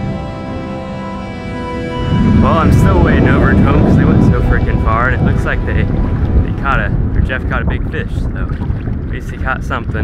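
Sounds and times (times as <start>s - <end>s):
wind buffeting microphone: 0.0s - 10.0s
man talking: 2.3s - 10.0s.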